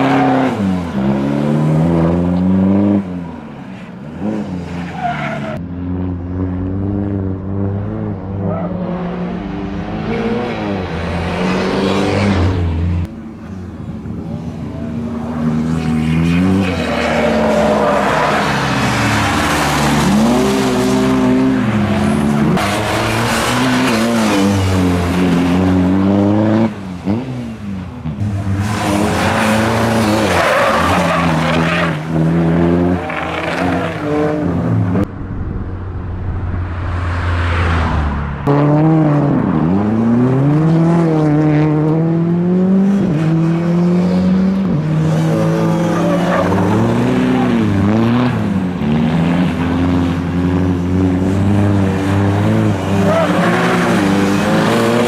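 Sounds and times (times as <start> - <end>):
tyres skidding: 0.0 - 5.6, 13.5 - 40.2, 51.2 - 55.0
rally car engine revving: 15.5 - 55.0.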